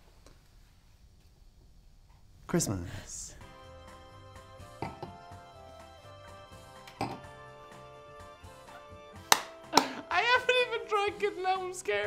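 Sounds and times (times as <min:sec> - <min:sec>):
quiet background music: 0:02.4 - 0:12.0
sharp smacks: 0:09.3 - 0:10.0.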